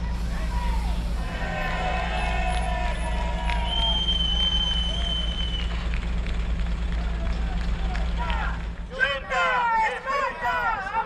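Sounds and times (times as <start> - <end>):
bus diesel engine idling: 0.0 - 11.0.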